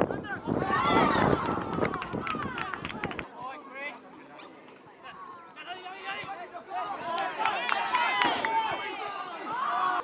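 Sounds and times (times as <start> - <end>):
voices shouting: 5.0 - 10.0.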